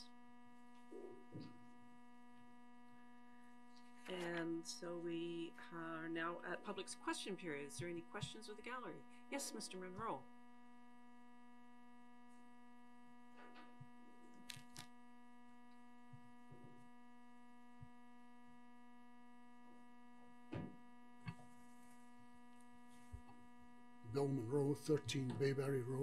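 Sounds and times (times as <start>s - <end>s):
electrical hum: 0.0s - 26.0s.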